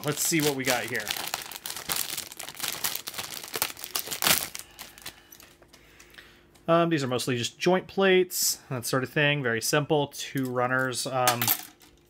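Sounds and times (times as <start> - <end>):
plastic bag crinkling: 0.0 - 5.6.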